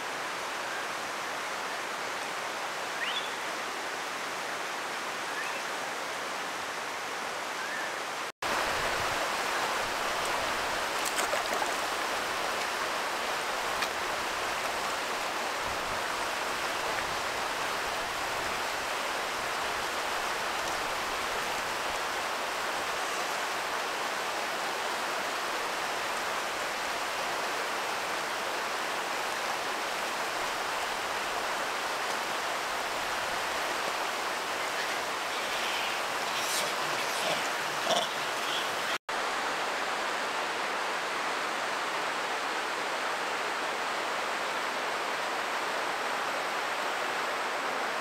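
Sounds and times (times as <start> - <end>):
running water rushing: 0.0 - 48.0.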